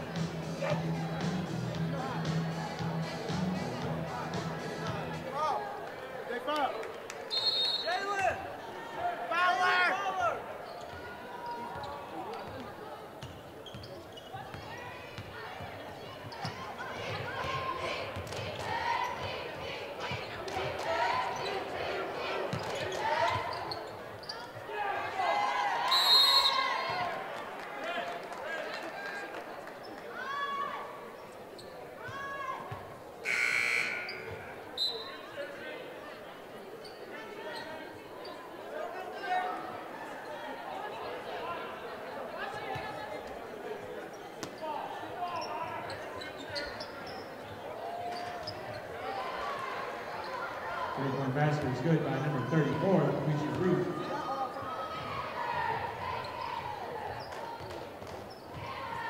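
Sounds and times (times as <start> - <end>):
players and crowd shouting: 7.3 - 13.0, 14.4 - 28.0, 47.5 - 57.9, 58.6 - 59.0
sneakers squeaking: 10.6 - 17.8, 22.5 - 24.7, 31.2 - 35.3, 36.8 - 38.4, 44.1 - 49.0, 53.5 - 59.0.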